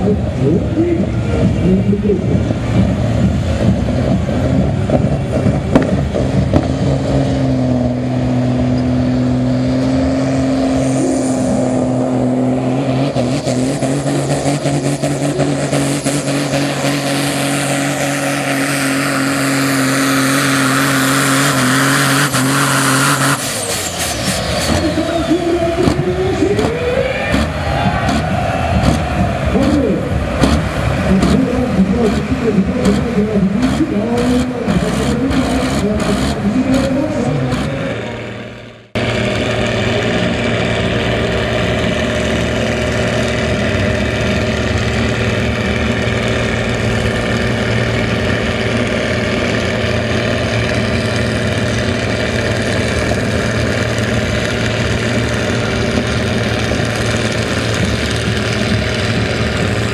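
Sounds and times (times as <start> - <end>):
tractor engine at full throttle: 0.0 - 59.9
uneven engine idling: 24.4 - 59.9.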